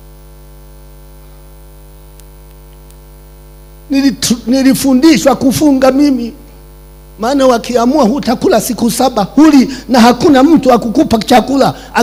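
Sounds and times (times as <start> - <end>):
electrical mains hum: 0.0 - 12.0
man speaking: 3.9 - 6.5, 7.2 - 12.0.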